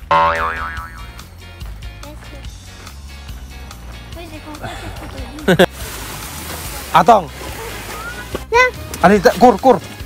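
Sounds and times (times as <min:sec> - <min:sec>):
cartoon boing sound effect: 0:00.0 - 0:01.1
background music: 0:00.0 - 0:10.0.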